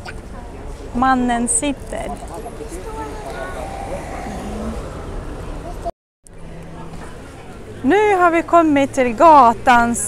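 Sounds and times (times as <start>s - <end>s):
road traffic: 0.0s - 10.0s
faint voices: 1.8s - 8.6s.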